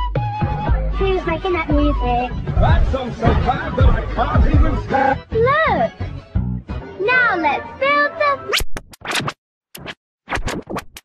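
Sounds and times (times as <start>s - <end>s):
record scratching: 8.5s - 11.0s.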